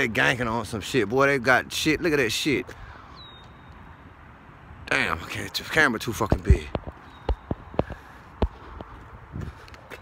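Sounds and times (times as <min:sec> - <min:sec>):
man's voice: 0:04.9 - 0:06.8.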